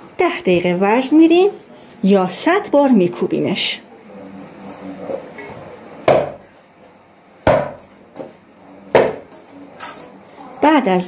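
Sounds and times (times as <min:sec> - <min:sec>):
dough thuds in steel bowl: 0:06.0 - 0:06.5, 0:07.4 - 0:08.3.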